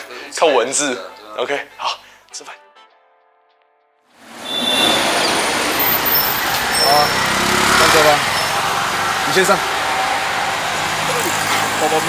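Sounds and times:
road traffic noise: 0:04.2 - 0:12.0.

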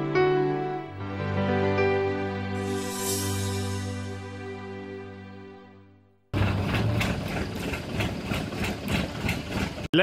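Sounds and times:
engine running steadily: 0:06.3 - 0:09.9.

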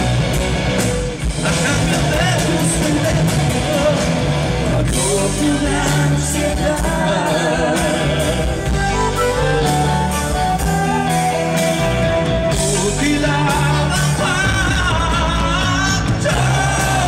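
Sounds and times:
live folk metal band: 0:00.0 - 0:17.0
person singing: 0:01.4 - 0:17.0.

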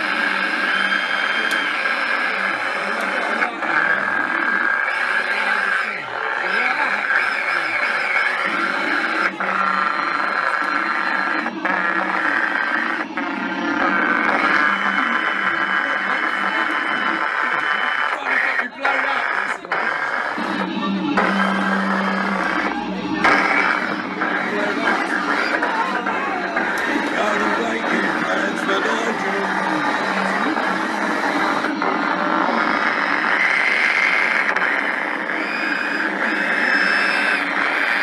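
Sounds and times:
distorted electronic noise music: 0:00.0 - 0:38.0
whining tones with pitch glides: 0:00.0 - 0:38.0.

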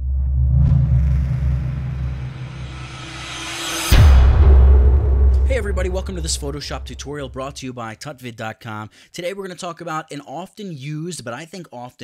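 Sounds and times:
deep cinematic rumble: 0:00.0 - 0:07.6.

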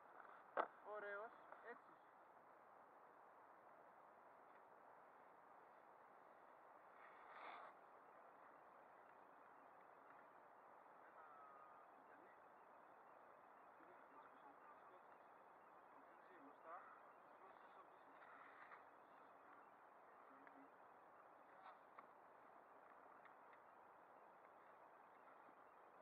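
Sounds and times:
faint steady hiss: 0:00.0 - 0:26.0
faint indistinct voices: 0:10.6 - 0:26.0.

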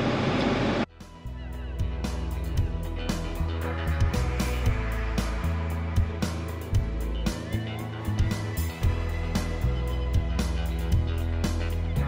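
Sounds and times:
tractor engine drone: 0:00.0 - 0:12.0
music with bass and guitar: 0:00.9 - 0:12.0.

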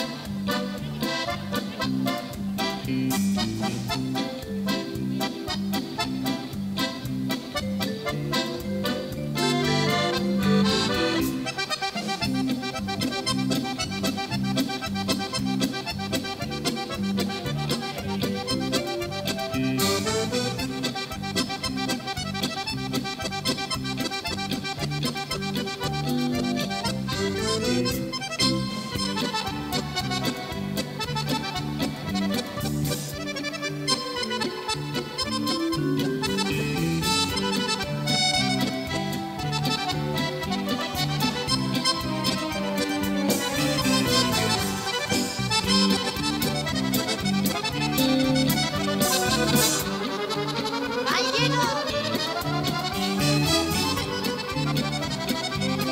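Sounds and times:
electric guitar accompaniment: 0:00.0 - 0:55.9
lively accordion music: 0:00.0 - 0:55.9.

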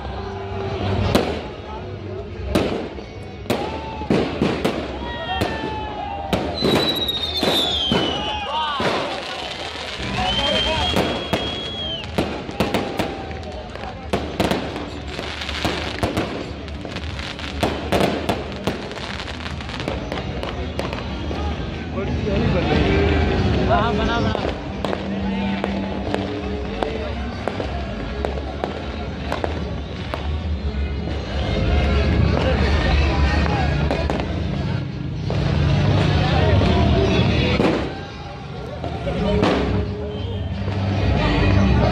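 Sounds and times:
crowd voices: 0:00.0 - 0:41.9
music: 0:00.0 - 0:41.9
fireworks bursting: 0:02.4 - 0:21.4, 0:33.4 - 0:41.2
high steady whistle: 0:06.6 - 0:08.6, 0:10.1 - 0:12.2.

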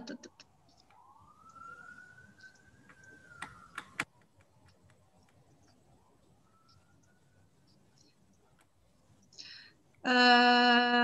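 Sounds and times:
faint siren wailing: 0:00.0 - 0:10.9
sharp clicks: 0:02.4 - 0:05.8.

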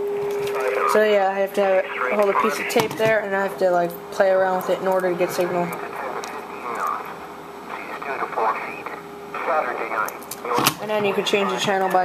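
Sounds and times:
radio static hiss: 0:00.0 - 0:03.6, 0:04.2 - 0:12.0
radio broadcast voice: 0:00.4 - 0:12.0.

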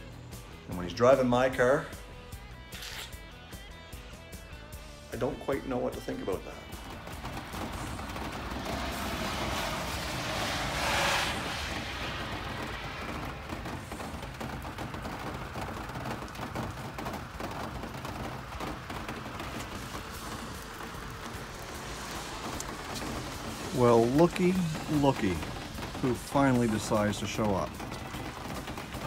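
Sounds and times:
rain pattering: 0:04.1 - 0:29.0
rushing hiss: 0:06.8 - 0:15.0, 0:18.8 - 0:29.0.

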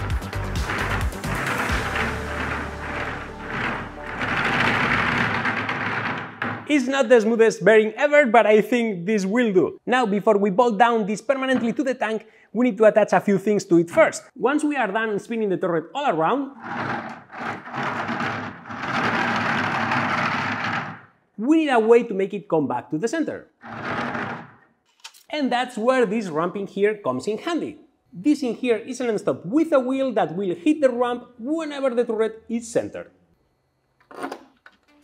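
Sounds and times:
bearing rough rolling noise: 0:00.0 - 0:06.8, 0:16.6 - 0:21.2.

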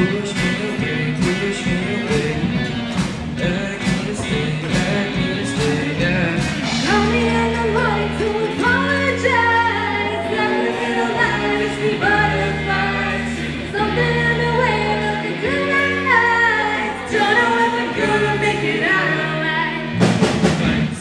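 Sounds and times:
bass line: 0:00.0 - 0:21.0
drum kit: 0:00.0 - 0:21.0
pop-rock band playing: 0:00.0 - 0:21.0
voices singing long notes: 0:00.0 - 0:21.0.

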